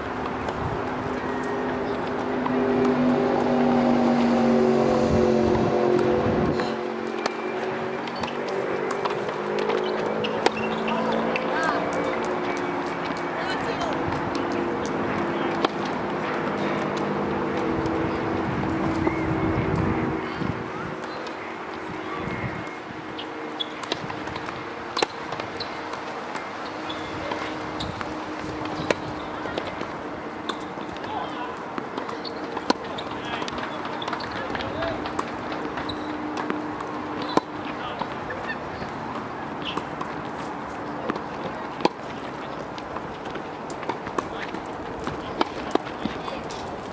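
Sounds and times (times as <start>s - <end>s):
steady engine drone: 0.0s - 46.9s
racket hitting tennis ball: 13.8s - 18.1s, 23.7s - 31.1s, 31.7s - 46.8s.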